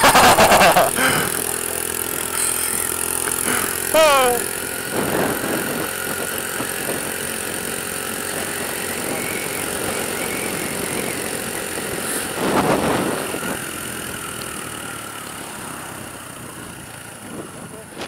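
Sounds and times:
motorcycle engine running: 0.0 - 18.0
wind rush on microphone: 4.8 - 14.1, 16.4 - 18.0.

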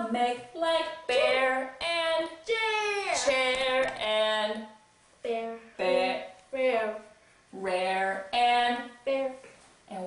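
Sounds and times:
woman and child singing: 0.0 - 4.7, 5.3 - 10.0.

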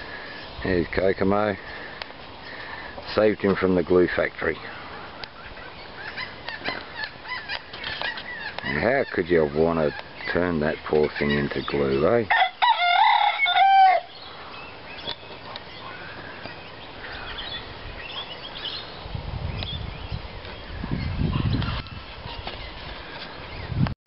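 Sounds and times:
rooster crowing: 12.3 - 14.2.

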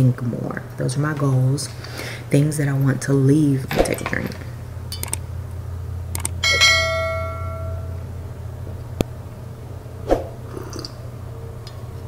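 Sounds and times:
steady low hum: 0.0 - 12.0
notification bell ding: 6.4 - 8.0.

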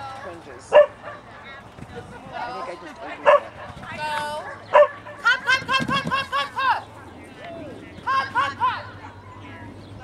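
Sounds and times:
dog barking: 0.7 - 1.4, 3.2 - 3.8, 4.4 - 5.2.

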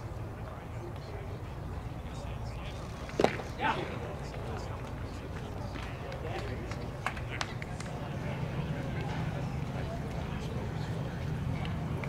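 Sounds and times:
distant voices and chatter: 0.0 - 12.0.

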